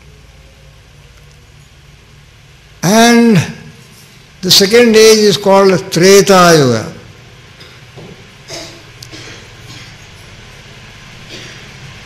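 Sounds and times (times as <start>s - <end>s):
low hum of room noise: 0.0s - 12.0s.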